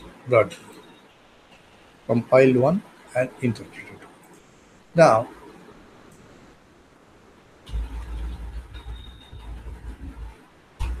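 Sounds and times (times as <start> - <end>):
low rumble: 7.7 - 11.0.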